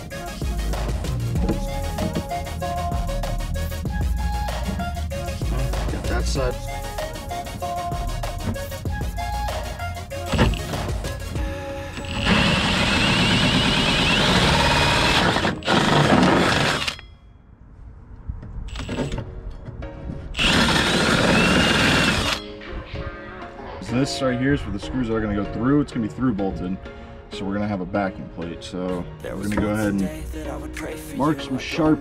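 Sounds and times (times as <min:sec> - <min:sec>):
drill hole saw cutting fibreglass: 0:11.9 - 0:17.0, 0:20.4 - 0:22.4.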